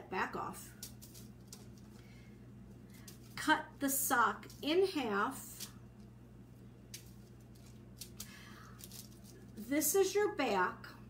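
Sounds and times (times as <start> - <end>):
low steady hum: 0.0 - 11.0
sock rustling on plastic: 0.8 - 2.1, 6.9 - 9.6.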